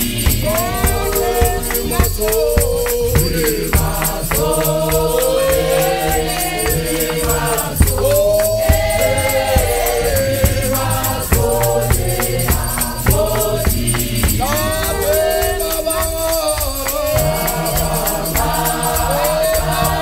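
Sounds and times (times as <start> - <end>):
choir singing in harmony: 0.0 - 20.0
shaken rattle: 0.0 - 20.0
steady percussion beat: 0.0 - 20.0.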